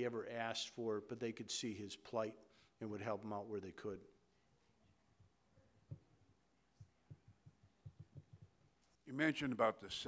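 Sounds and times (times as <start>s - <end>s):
microphone handling thumps: 6.8s - 8.6s.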